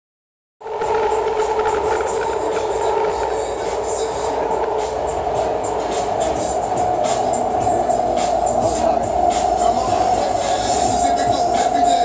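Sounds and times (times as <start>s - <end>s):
subway train running: 0.6s - 12.0s.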